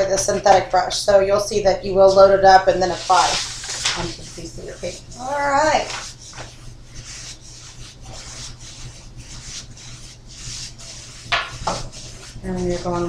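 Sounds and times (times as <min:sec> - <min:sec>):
paintbrushes stroking rough surface: 0:02.0 - 0:13.0.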